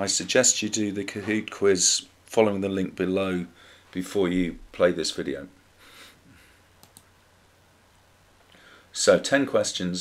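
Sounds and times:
computer mouse clicks: 0:06.8 - 0:07.1.

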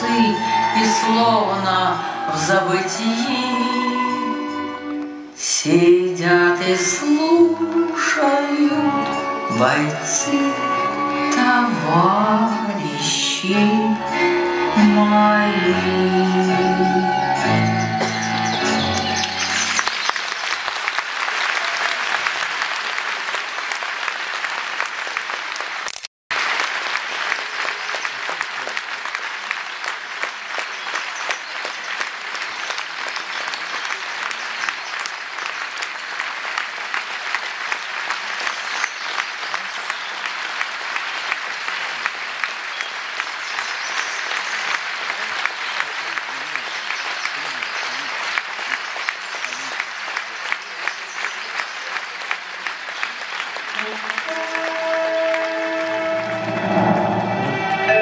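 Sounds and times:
audience applauding: 0:16.4 - 0:58.0.

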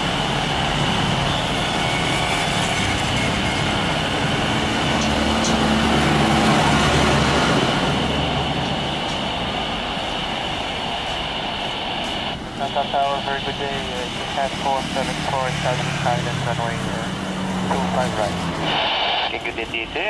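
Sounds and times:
jet engines rushing with high whine: 0:00.0 - 0:20.0.

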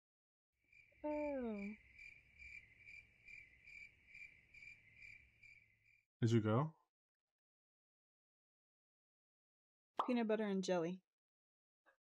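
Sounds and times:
cricket chirping: 0:00.7 - 0:06.0.

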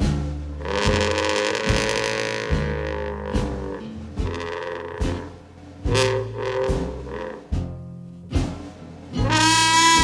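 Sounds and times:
jazz band playing slow blues: 0:00.0 - 0:10.0.

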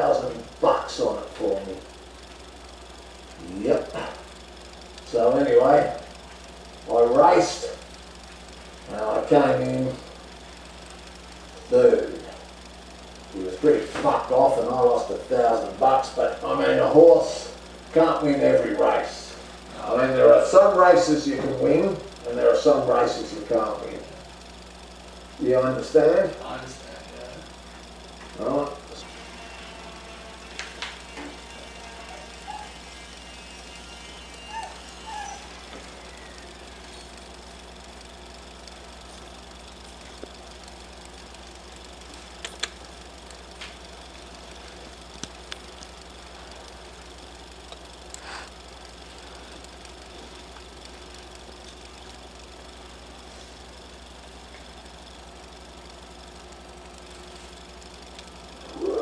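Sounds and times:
room tone hum and hiss: 0:00.0 - 0:59.0
faint clicks: 0:42.1 - 0:43.9.

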